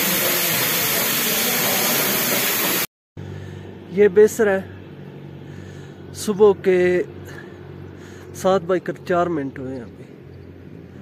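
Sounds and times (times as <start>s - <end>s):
pressure cooker steam hissing: 0.0s - 2.9s.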